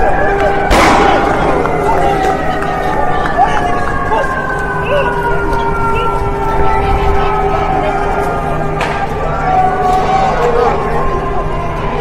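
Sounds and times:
emergency vehicle siren: 0.0s - 12.0s.

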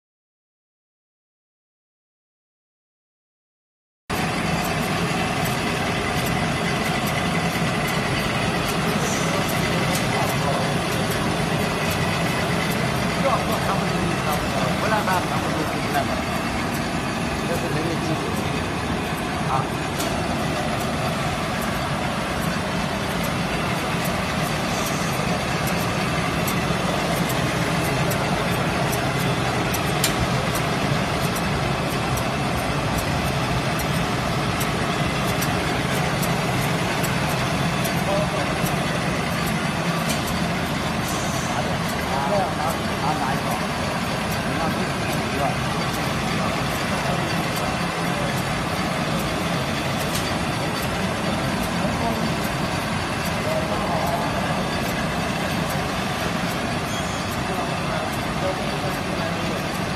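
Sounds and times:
machine hum: 4.1s - 59.9s.

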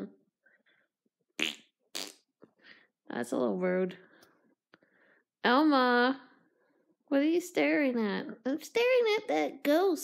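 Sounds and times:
person blowing raspberries: 1.4s - 2.3s.

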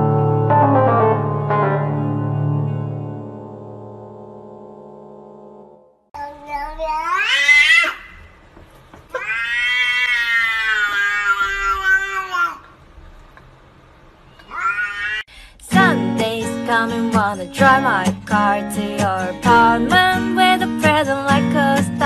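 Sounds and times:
cat meowing: 6.5s - 8.1s, 9.1s - 12.6s, 14.4s - 15.3s.

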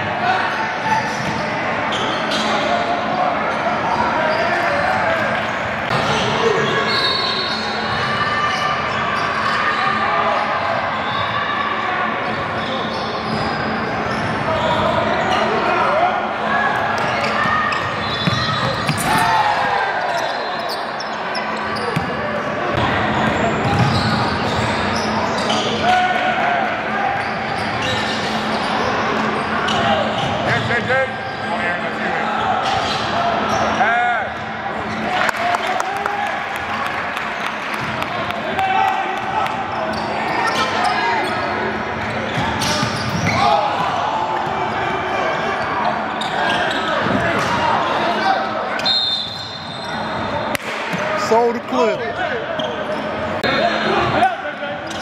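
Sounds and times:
echoing chatter of voices: 0.0s - 55.0s
sneakers squeaking: 0.5s - 2.9s, 3.5s - 11.5s, 12.2s - 15.7s, 16.7s - 26.0s, 27.0s - 31.6s, 32.4s - 35.2s, 37.4s - 38.1s, 39.2s - 55.0s.

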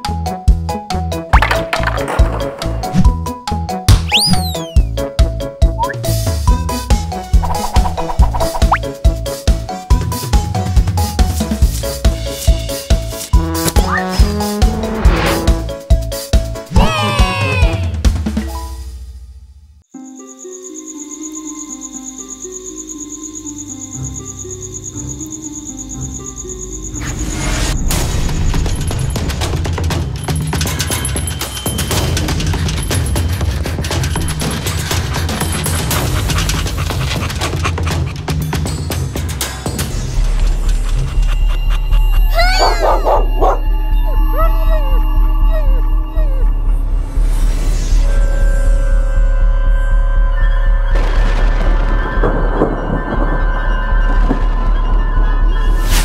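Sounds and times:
cartoon dog yelping: 16.7s - 17.9s, 42.2s - 46.6s
crickets chirping: 19.9s - 27.5s.

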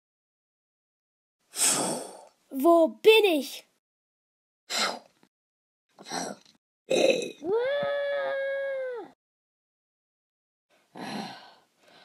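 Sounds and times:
breathy puff of air: 1.5s - 2.3s.

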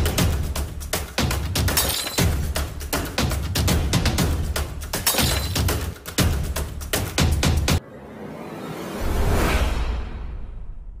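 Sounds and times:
whoosh: 7.8s - 11.0s.

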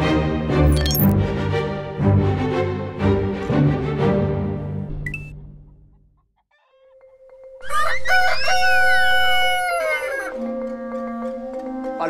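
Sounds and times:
music: 0.0s - 12.0s
rooster crowing: 7.6s - 10.5s.

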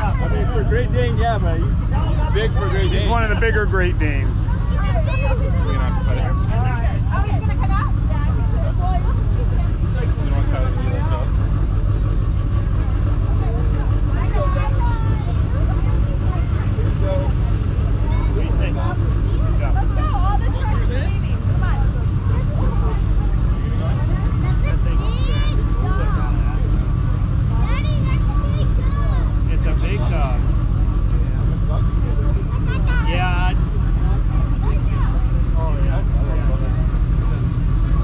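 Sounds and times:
diesel engine idling: 0.0s - 38.0s
people talking: 0.0s - 38.0s.

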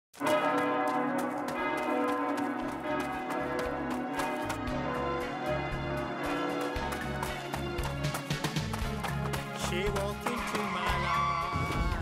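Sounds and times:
church bells ringing: 0.2s - 7.8s.

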